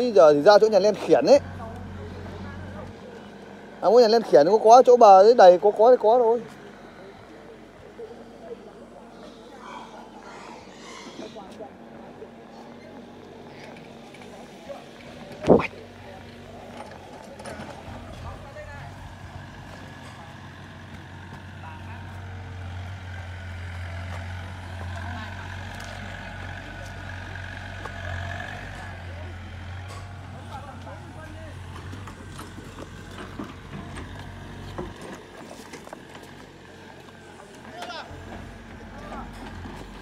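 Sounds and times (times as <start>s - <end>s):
excavator diesel engine running: 0.0s - 10.8s, 11.6s - 40.0s.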